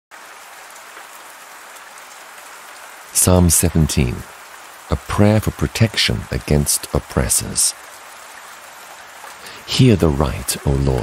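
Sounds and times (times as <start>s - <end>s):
rain hissing: 0.1s - 11.0s.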